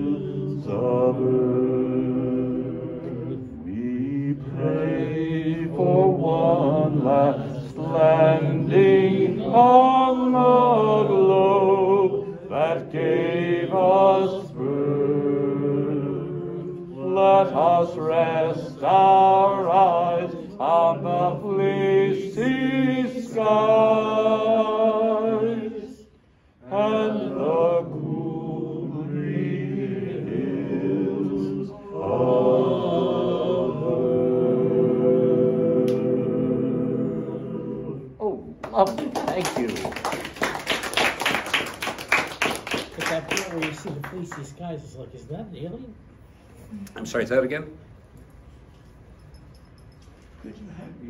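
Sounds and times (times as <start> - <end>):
audience applauding: 38.7 - 44.5.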